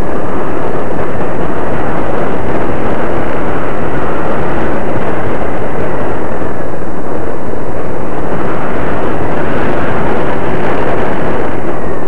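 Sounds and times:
model plane motor and propeller: 0.0s - 12.0s.

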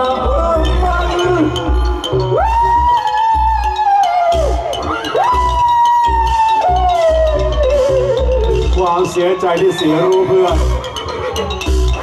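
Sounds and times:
person singing wailing notes: 0.0s - 10.9s
steady low drum beat: 0.0s - 12.0s.

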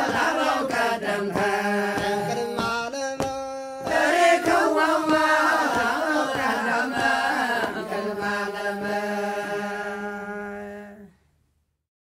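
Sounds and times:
liturgical chanting: 0.0s - 11.2s.

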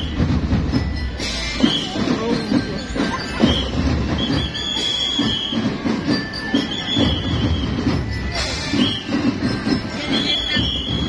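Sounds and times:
crowd street noise: 0.0s - 11.0s
high whistle blasts: 3.5s - 9.3s, 10.1s - 11.0s.

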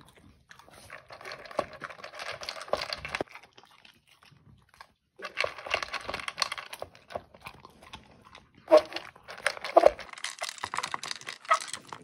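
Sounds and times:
dog crunching dry kibble: 0.0s - 12.0s.

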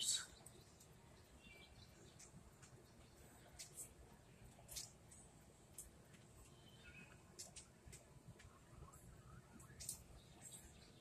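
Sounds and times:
faint high-pitched chirps: 6.4s - 7.6s.

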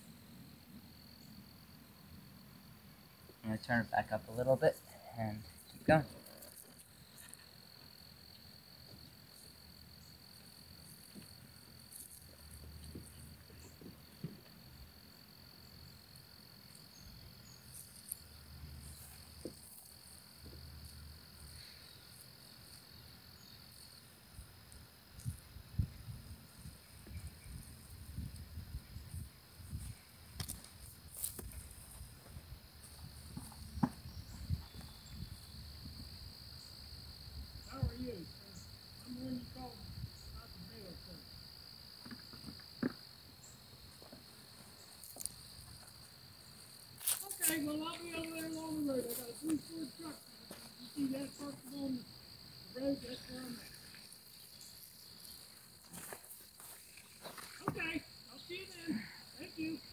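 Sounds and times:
crickets chirping: 0.0s - 59.9s.

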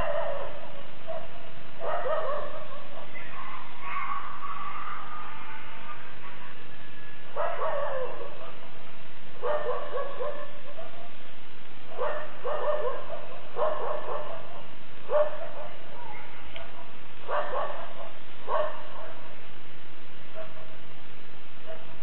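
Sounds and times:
dog barking and yelping: 0.0s - 6.0s, 7.3s - 8.7s, 9.4s - 11.2s, 11.9s - 19.3s, 20.3s - 20.8s, 21.6s - 22.0s.

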